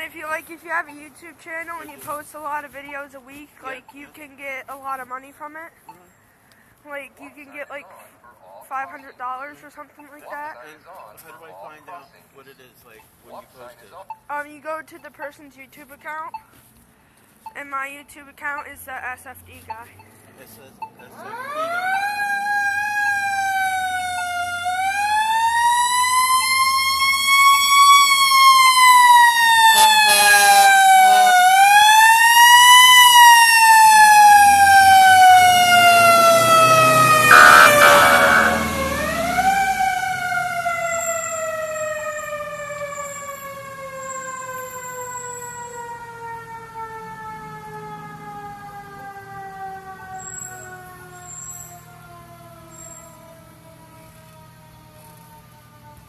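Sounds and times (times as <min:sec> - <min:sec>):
fire truck siren wailing: 0:21.2 - 0:56.0
short horn blasts: 0:29.8 - 0:31.2, 0:37.3 - 0:39.2
truck engine rumble: 0:34.2 - 0:41.4.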